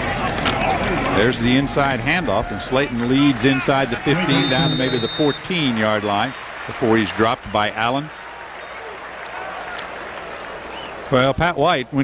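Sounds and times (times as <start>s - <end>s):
stadium crowd applauding and cheering: 0.0s - 12.0s.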